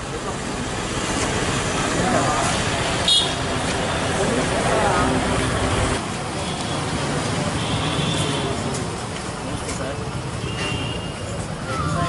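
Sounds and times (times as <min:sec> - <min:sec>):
steady traffic noise: 0:00.0 - 0:12.0
people talking: 0:01.9 - 0:03.1, 0:03.7 - 0:06.0, 0:07.3 - 0:12.0.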